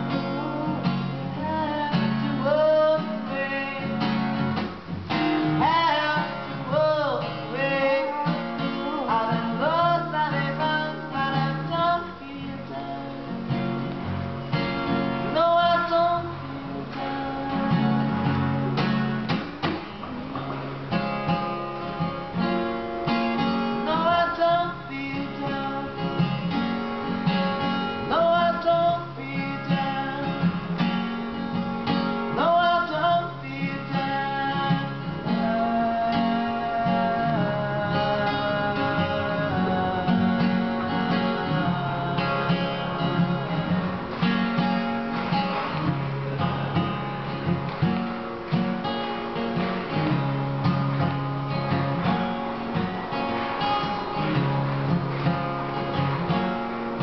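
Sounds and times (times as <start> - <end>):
man singing: 0.0 - 4.6, 5.4 - 13.7, 15.2 - 18.8, 23.4 - 26.7, 28.0 - 31.0, 32.3 - 44.3
acoustic guitar strumming: 0.0 - 57.0.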